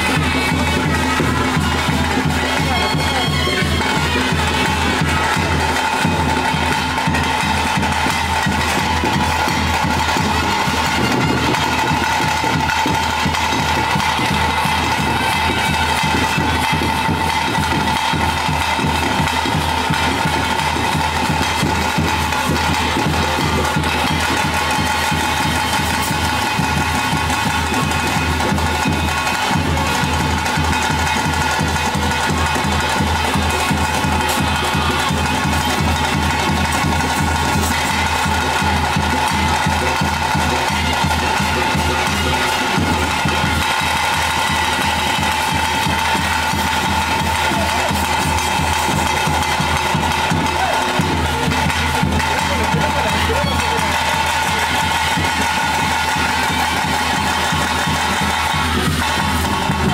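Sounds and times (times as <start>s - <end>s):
fast drumming: 0.0s - 59.9s.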